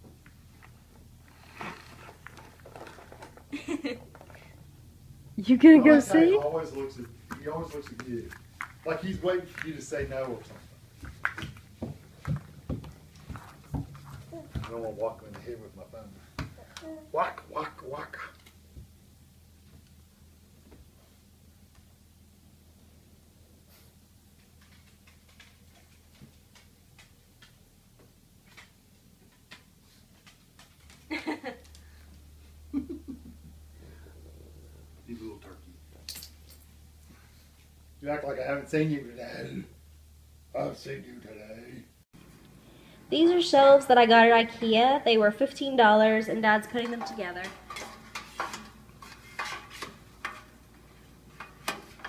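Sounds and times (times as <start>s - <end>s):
low room hum: 0.0s - 52.0s
footsteps on hardwood floor: 7.3s - 14.9s.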